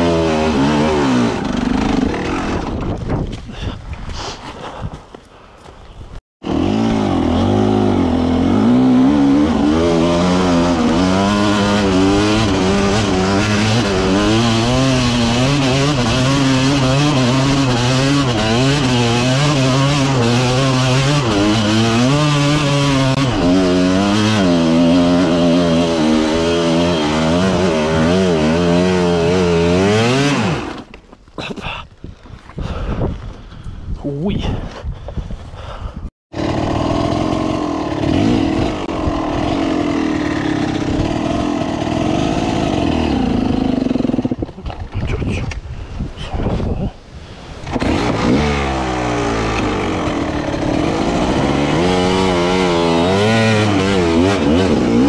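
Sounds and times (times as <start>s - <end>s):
dirt bike engine revving: 0.0s - 2.9s, 6.4s - 30.9s, 36.3s - 44.6s, 47.6s - 55.0s.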